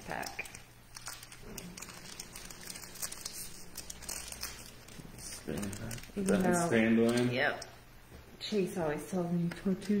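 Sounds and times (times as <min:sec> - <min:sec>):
foil wrapper crinkling: 0:00.0 - 0:07.4.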